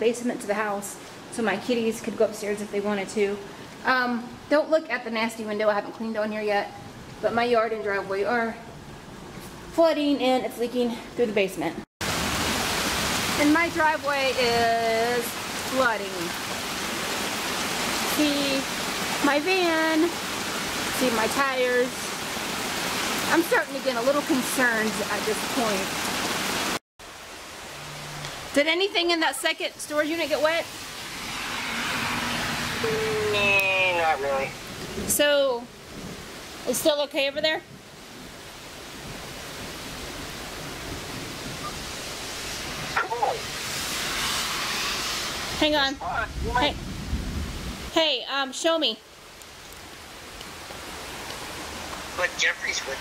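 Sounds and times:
heavy rain pouring: 12.0 - 53.0.

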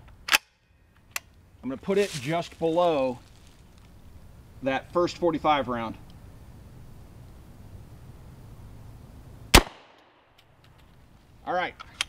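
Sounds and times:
low rumble and hiss: 0.0 - 12.0
gunshot: 9.5 - 10.2.

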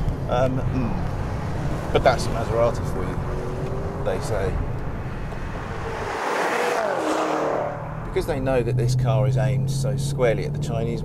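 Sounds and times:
car engine rumble: 0.0 - 11.0.

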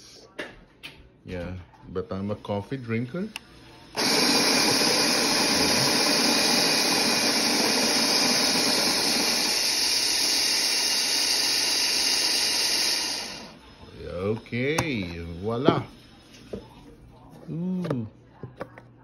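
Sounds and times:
coffee grinder grinding beans: 4.0 - 16.5.

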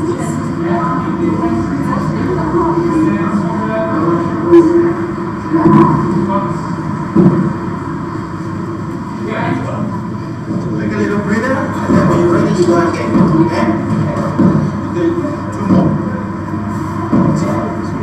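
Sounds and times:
indistinct voices: 0.0 - 18.0
rumbling undertone: 0.0 - 18.0
sharp knocks: 13.1 - 14.7.

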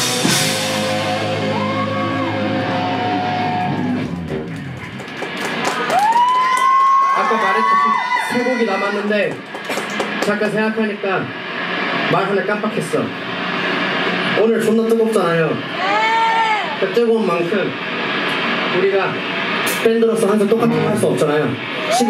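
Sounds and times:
rock band chord ringing: 0.0 - 4.4, 20.6 - 21.7
stray electric guitar notes: 0.0 - 4.9, 20.6 - 22.0
people talking: 10.2 - 11.3, 12.1 - 13.1, 14.4 - 15.6, 16.8 - 17.8, 18.8 - 19.2, 19.8 - 22.0.

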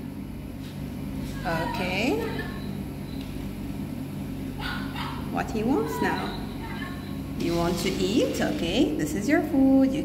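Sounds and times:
steady low hum: 0.0 - 10.0
dog sound through small speaker: 4.6 - 7.1.

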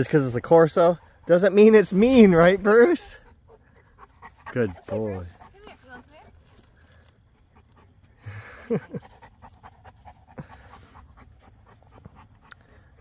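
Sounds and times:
dog panting: 0.2 - 13.0.

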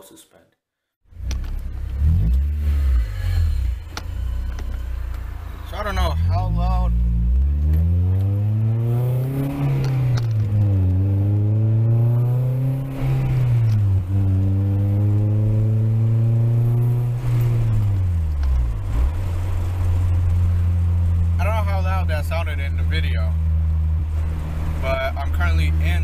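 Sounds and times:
car engine accelerating: 1.1 - 26.0.

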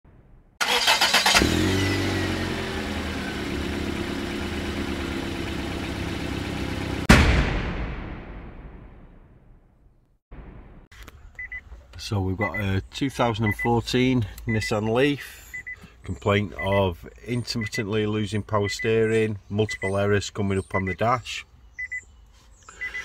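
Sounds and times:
engine cranking and running: 0.6 - 5.7
loud ringing hit: 7.1 - 9.7
faint electronic beeps: 11.4 - 11.6, 15.5 - 15.8, 16.6 - 21.2, 21.8 - 22.1.

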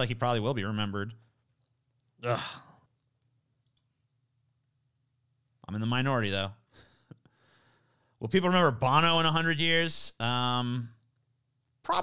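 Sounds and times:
person sighing in disgust: 2.2 - 2.8.

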